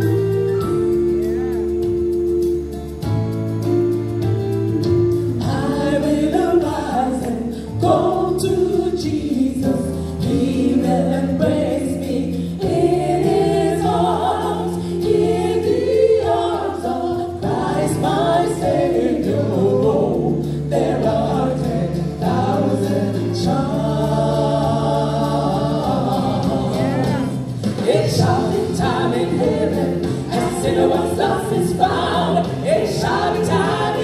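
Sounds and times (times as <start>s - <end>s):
women's gospel group singing: 4.8s - 34.0s.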